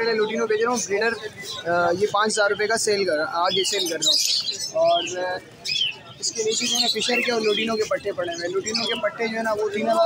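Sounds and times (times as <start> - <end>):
caged birds chirping: 0.0 - 10.0.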